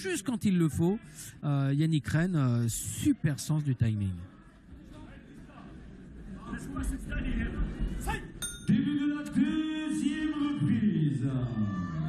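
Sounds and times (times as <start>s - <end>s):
ring bell ding: 8.4s - 8.8s.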